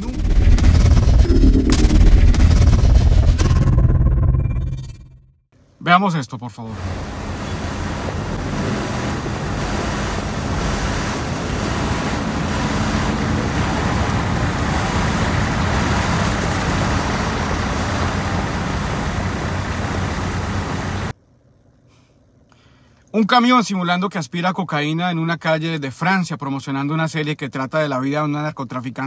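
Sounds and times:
truck engine rumbling: 0.0s - 5.4s, 6.7s - 23.1s
street traffic: 6.7s - 22.4s.

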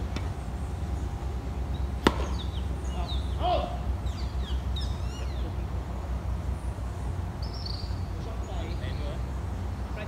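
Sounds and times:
birds chirping: 0.0s - 10.0s
steady low rumble: 0.0s - 10.0s
tennis ball struck by racket: 2.0s - 2.6s.

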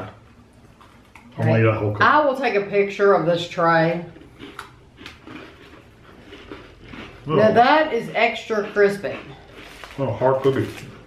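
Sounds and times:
crunching and chewing cookie: 4.0s - 11.0s.

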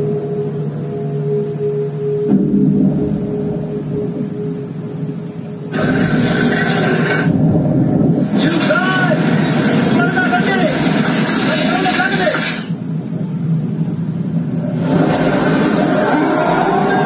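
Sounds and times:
people shouting: 15.2s - 17.0s.

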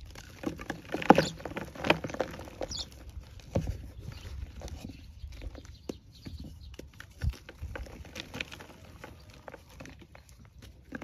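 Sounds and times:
chalk block crunching and crumbling: 0.0s - 11.0s.

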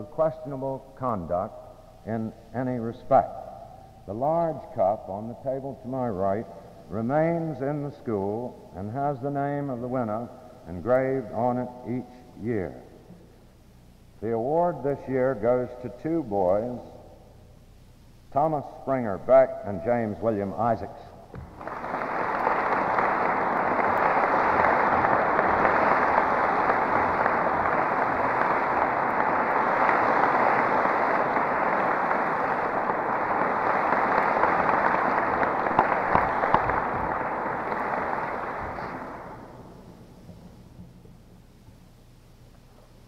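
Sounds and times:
audience applauding: 21.4s - 39.9s.

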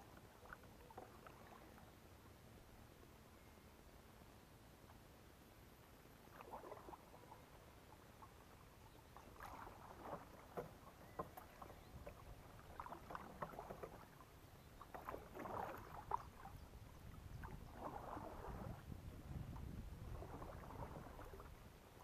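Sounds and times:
paddle splashing in water: 0.0s - 1.8s, 6.2s - 22.0s.

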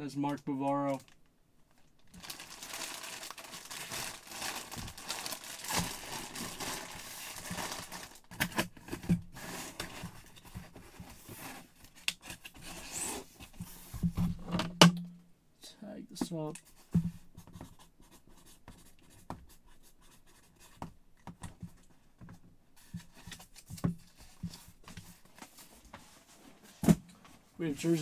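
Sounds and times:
plastic bag crinkling: 0.9s - 8.3s.

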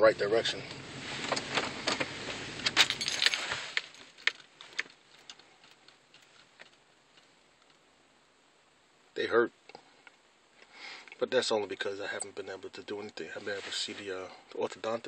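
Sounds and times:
car engine hum: 0.0s - 9.1s
car keys jangling: 2.7s - 6.5s.

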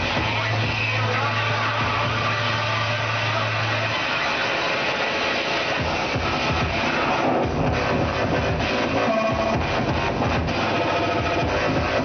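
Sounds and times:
dance workout music: 0.0s - 12.0s
low bass drone: 5.6s - 12.0s.

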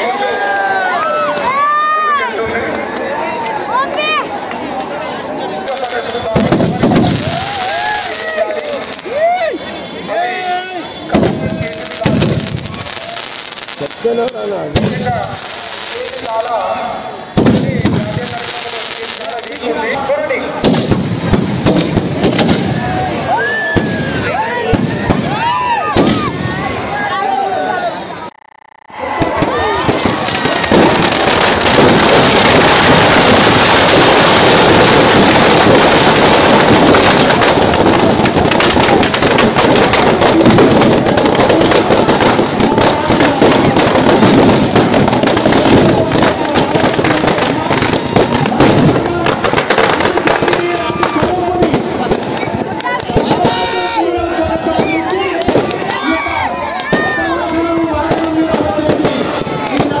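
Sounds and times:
firecrackers crackling and banging: 0.0s - 10.1s, 10.8s - 27.0s, 28.3s - 60.0s
voices of onlookers: 0.0s - 60.0s.

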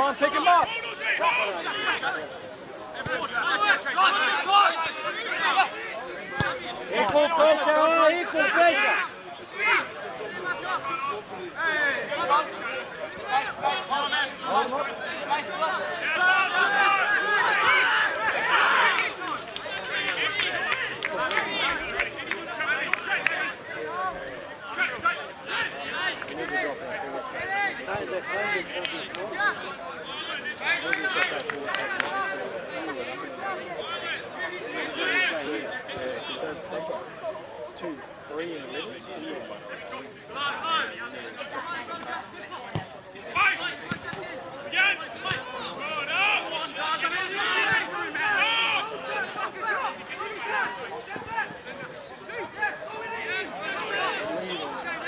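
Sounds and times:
men talking and calling out: 0.0s - 55.0s.

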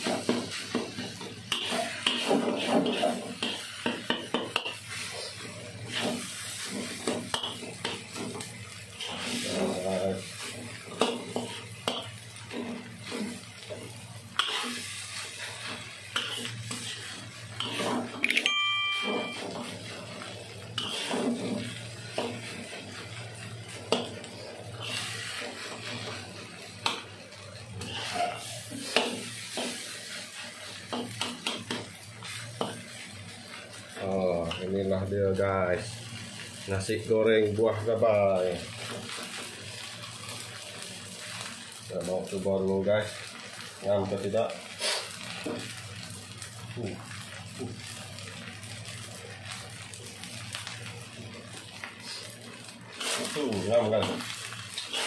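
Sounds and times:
metal spatula scraping a wok: 0.0s - 18.2s, 19.0s - 23.2s, 23.9s - 26.2s, 27.8s - 33.0s, 52.0s - 55.0s
brief beep: 18.3s - 19.5s.

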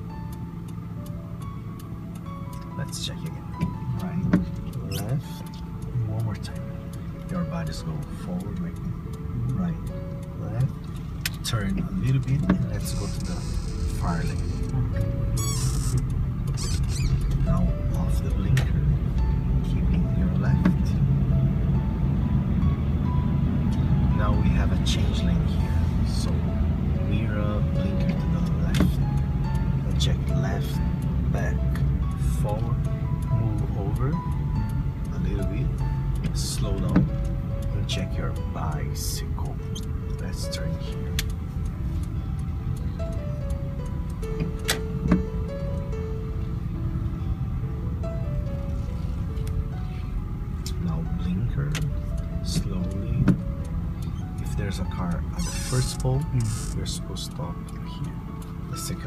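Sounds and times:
car engine and road rumble: 0.0s - 59.0s
music: 0.0s - 59.0s
person speaking: 2.7s - 10.8s, 11.4s - 15.5s, 54.4s - 59.0s.

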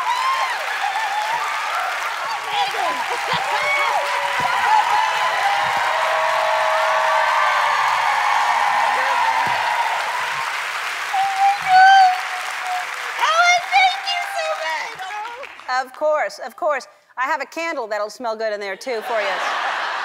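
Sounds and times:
excited screams: 0.0s - 15.0s
audience applauding and cheering: 0.0s - 16.0s.

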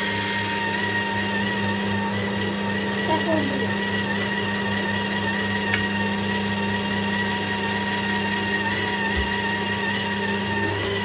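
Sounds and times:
juicer motor hum and whine: 0.0s - 11.0s.

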